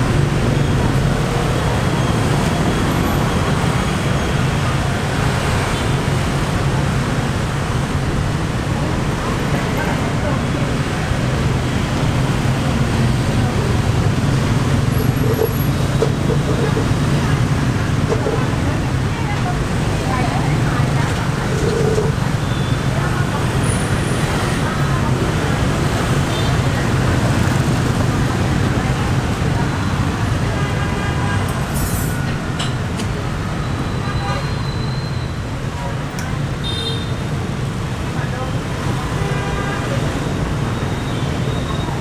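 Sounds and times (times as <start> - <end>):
voices: 0.0 - 36.9, 37.9 - 42.0
city street traffic: 0.0 - 42.0.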